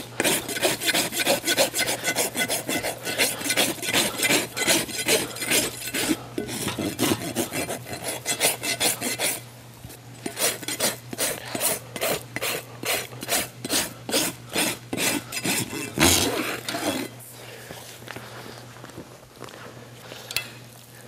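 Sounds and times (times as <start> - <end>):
hoof rasp filing hoof: 0.0 - 9.4, 10.2 - 17.2.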